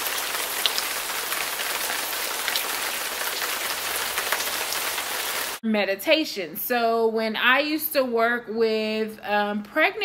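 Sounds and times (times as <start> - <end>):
steady rain falling: 0.0 - 5.6.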